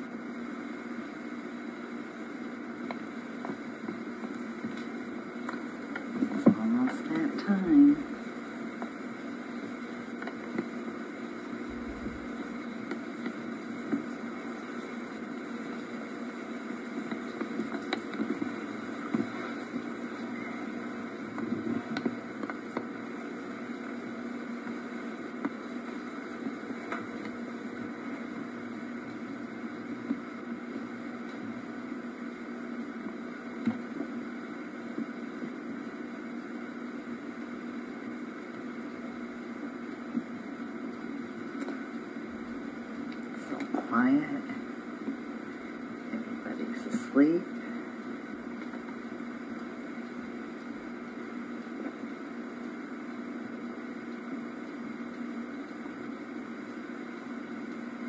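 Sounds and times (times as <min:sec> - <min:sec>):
videotape hum and hiss: 0:00.0 - 0:58.0.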